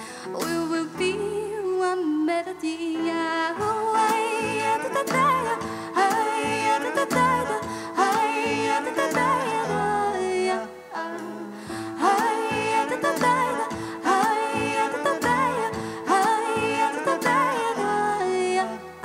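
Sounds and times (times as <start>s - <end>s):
drums: 0.0s - 1.3s, 3.6s - 9.8s, 11.2s - 17.8s
stage piano: 0.0s - 19.0s
electric bass: 3.6s - 19.0s.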